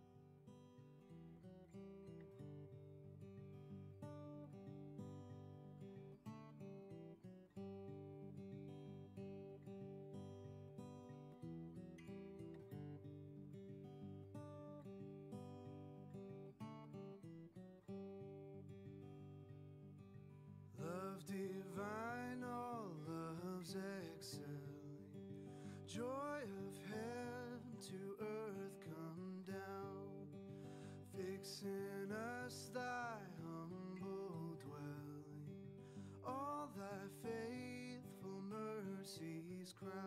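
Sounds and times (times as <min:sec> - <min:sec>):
acoustic guitar picking: 0:00.0 - 0:40.0.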